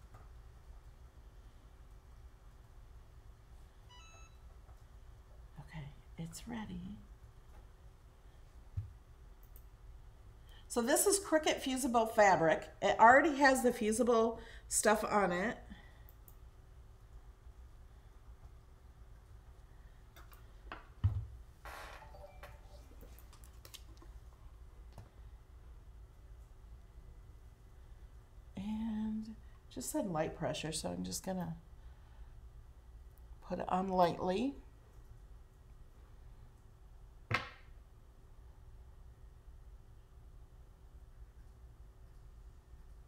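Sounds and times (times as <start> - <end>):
low room hum: 0.0 - 43.0
electronic chime: 22.0 - 23.0.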